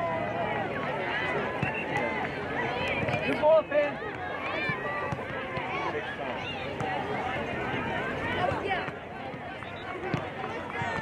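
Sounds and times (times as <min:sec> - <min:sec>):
crowd shouting and calling: 0:00.0 - 0:11.0.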